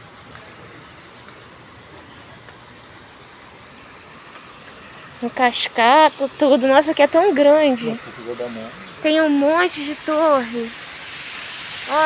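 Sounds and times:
water rushing down steps: 0.0s - 12.0s.

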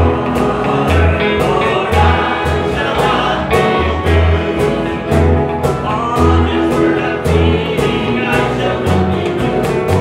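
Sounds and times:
acoustic guitar: 0.0s - 10.0s
band keeping a steady beat: 0.0s - 10.0s
group singing gospel song: 0.0s - 10.0s.

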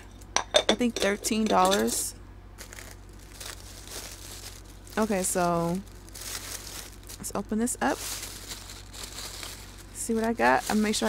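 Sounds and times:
plastic bag crinkling: 2.6s - 11.0s.

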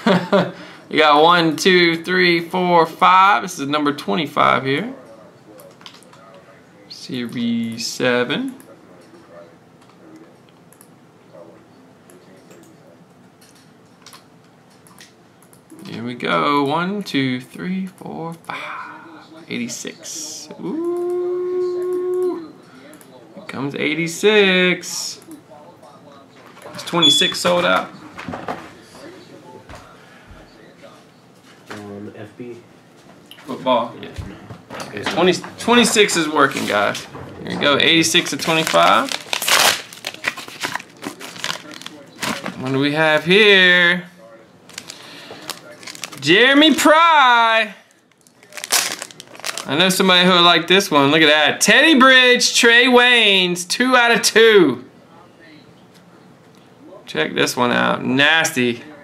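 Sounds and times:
plastic packaging crinkling: 38.0s - 42.7s, 44.7s - 46.9s, 47.9s - 50.0s.

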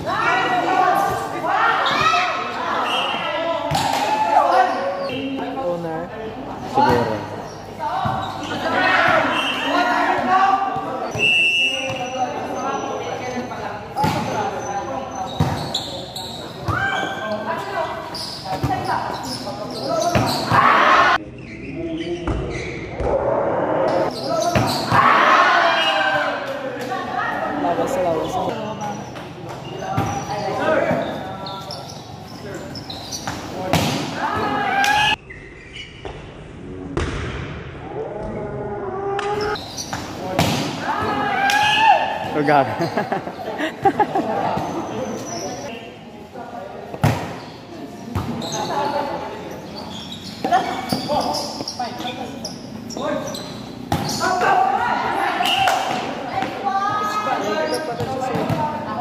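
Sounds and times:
people shouting and cheering: 0.0s - 5.0s, 34.1s - 35.2s, 40.8s - 42.7s
volleyball hits: 33.2s - 35.2s, 39.2s - 42.4s.

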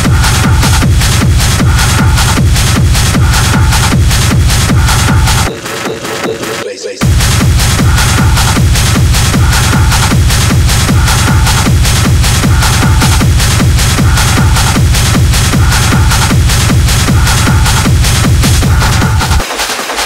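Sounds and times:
hi-hats: 0.0s - 20.0s
kick drum beat: 0.0s - 20.0s
techno music: 0.0s - 20.0s.

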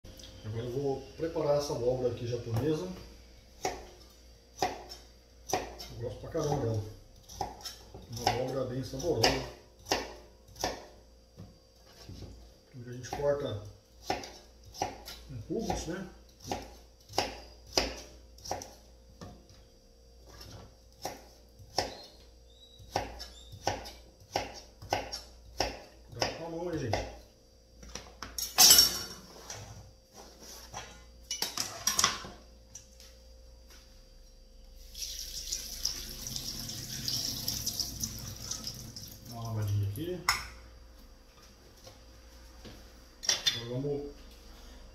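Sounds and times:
knife chopping on plastic board: 14.0s - 18.8s, 21.0s - 22.1s, 22.8s - 27.2s.

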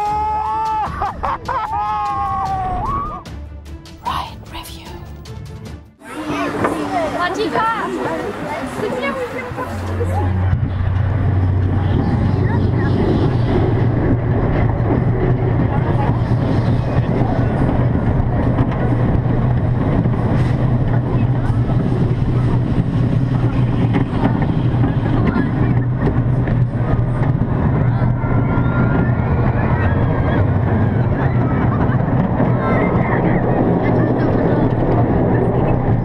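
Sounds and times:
roller coaster rumbling on track: 0.0s - 3.2s, 6.0s - 36.0s.

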